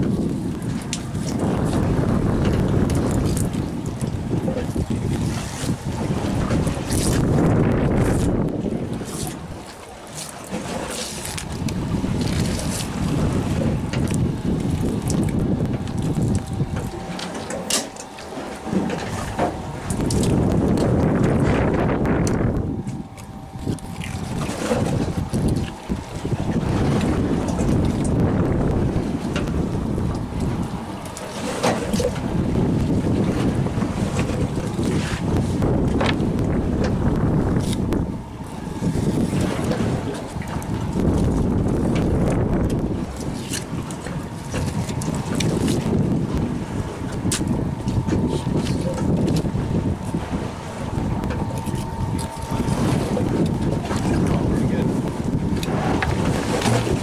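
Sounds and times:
wind buffeting microphone: 0.0s - 57.0s
faint steady hum: 0.1s - 57.0s.

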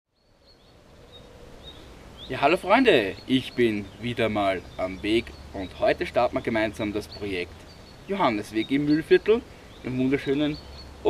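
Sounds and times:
high bird chirps: 0.1s - 11.0s.

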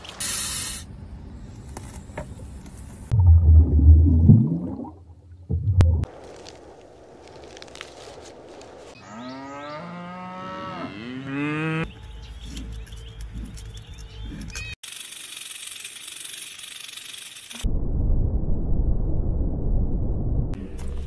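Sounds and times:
cow mooing: 9.0s - 11.9s.

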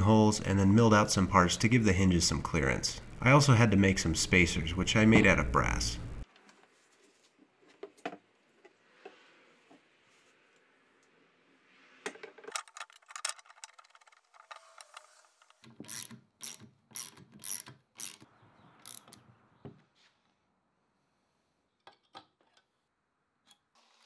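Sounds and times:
metal parts clicking and knocking: 12.3s - 19.2s.

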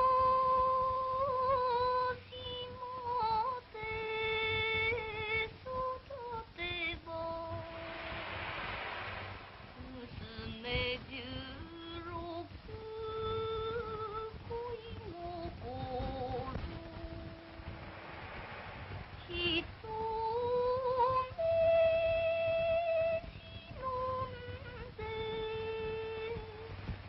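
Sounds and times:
woman singing: 0.0s - 8.2s, 9.7s - 18.1s, 19.2s - 27.0s
record crackle: 0.0s - 27.0s.

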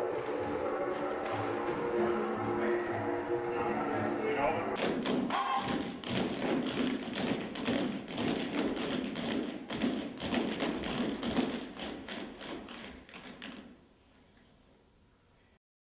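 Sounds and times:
music: 0.0s - 13.0s
tap shoes clicking on stage: 4.8s - 14.6s.

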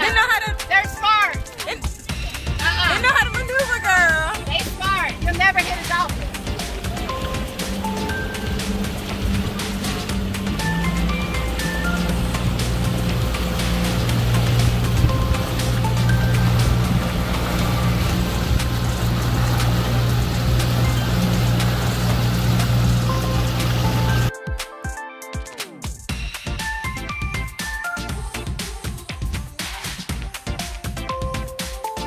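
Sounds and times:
rushing water: 0.0s - 24.3s
background music with melody: 0.0s - 32.0s
outboard motor running: 1.4s - 24.3s
wind: 4.6s - 24.3s.

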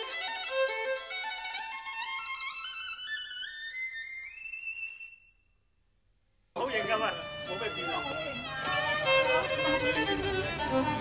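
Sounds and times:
violin music: 0.0s - 4.8s, 6.6s - 11.0s.

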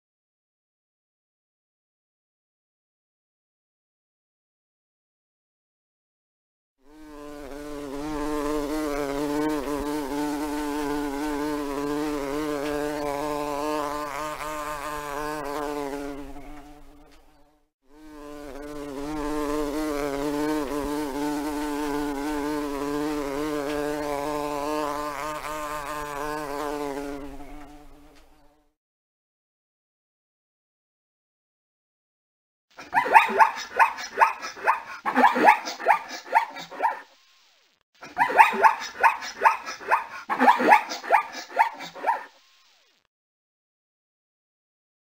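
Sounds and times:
bumblebee buzzing: 6.8s - 28.7s.

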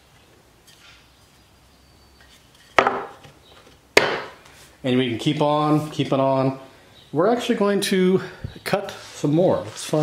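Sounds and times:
wooden strips being handled: 2.2s - 6.2s.

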